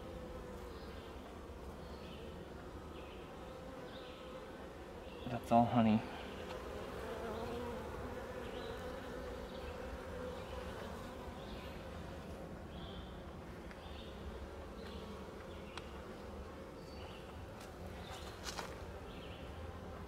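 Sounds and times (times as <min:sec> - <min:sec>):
honeybees buzzing: 0:00.0 - 0:20.0.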